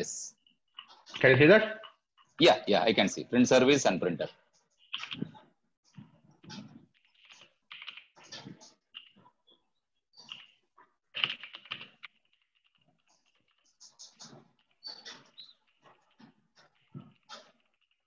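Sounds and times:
typing on computer keyboard: 4.9 - 5.4, 6.5 - 9.1, 11.1 - 13.6.

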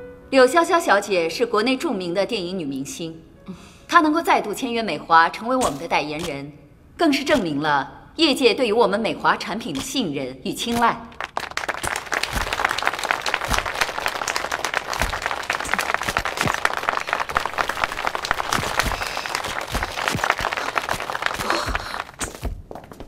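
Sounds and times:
crowd applauding: 11.1 - 22.2.

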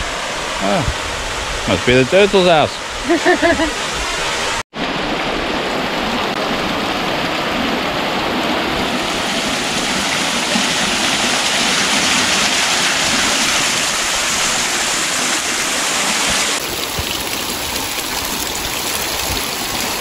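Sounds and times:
waterfall splashing into pond: 0.0 - 0.8, 1.6 - 20.0.

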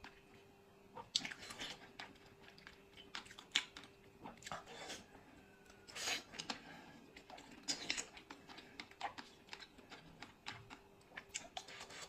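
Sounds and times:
person chewing crisp food: 1.0 - 12.0.

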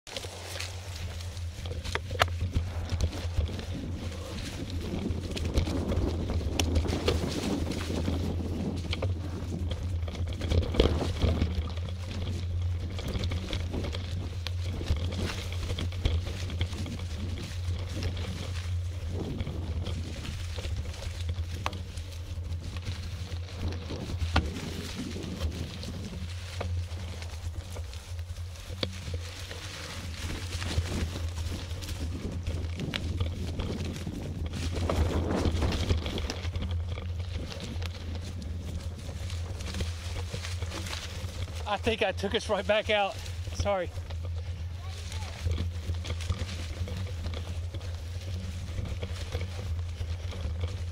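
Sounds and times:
tyres crunching through dry leaves: 0.0 - 50.9
bike knocks and rattles: 0.1 - 50.9
steady low hum: 0.1 - 50.9.

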